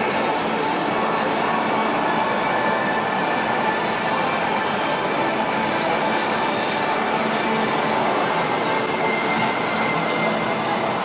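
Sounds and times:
busy exhibition hall noise: 0:00.0 - 0:11.0.

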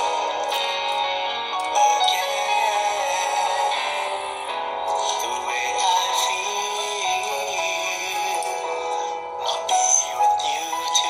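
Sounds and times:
backing music: 0:00.0 - 0:11.0
man singing: 0:01.6 - 0:11.0.

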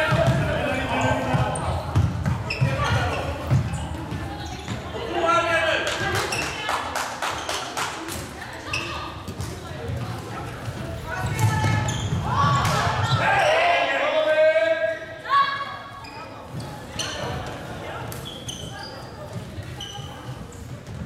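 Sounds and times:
shoes squeaking on court floor: 0:00.0 - 0:05.2, 0:06.0 - 0:06.7, 0:07.3 - 0:13.6, 0:15.8 - 0:21.0.

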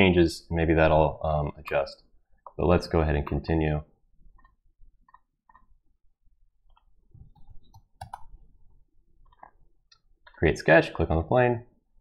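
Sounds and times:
mouse and keyboard clicks: 0:06.7 - 0:08.3.

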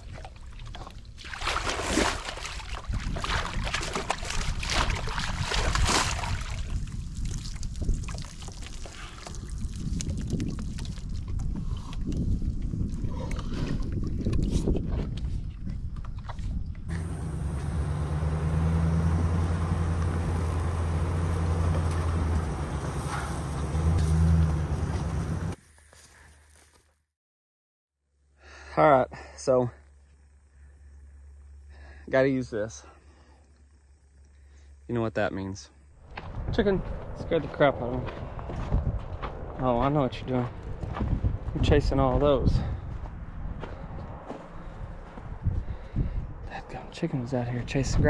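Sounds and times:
water sloshing and splashing: 0:00.0 - 0:11.6
low engine hum: 0:16.8 - 0:25.6, 0:35.8 - 0:48.0.

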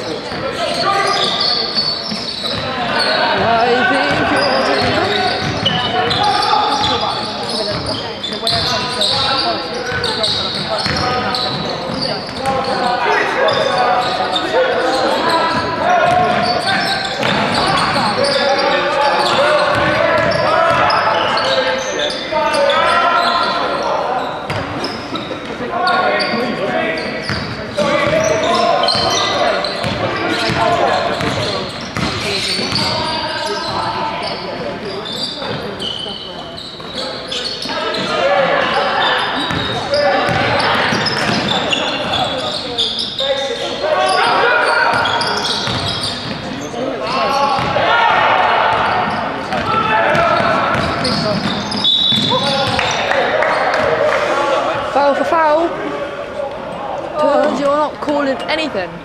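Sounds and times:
shoes squeaking on floor: 0:00.0 - 0:47.9, 0:48.6 - 0:53.9
ball bouncing on wooden court: 0:32.0 - 0:32.9, 0:39.5 - 0:41.5, 0:45.6 - 0:46.4, 0:47.6 - 0:47.8, 0:49.0 - 0:52.8.

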